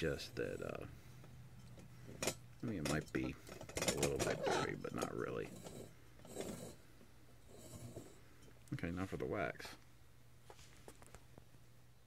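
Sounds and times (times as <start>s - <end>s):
faint metal scrapes: 0.0s - 9.3s
low steady hum: 0.0s - 12.0s.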